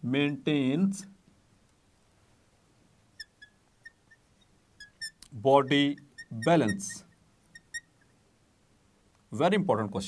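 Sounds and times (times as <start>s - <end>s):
marker pen squeaking on glass: 3.2s - 8.1s.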